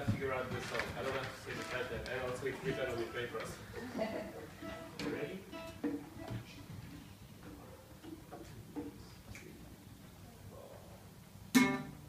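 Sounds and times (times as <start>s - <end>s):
classical guitar plucked notes: 4.6s - 6.4s, 11.5s - 12.0s.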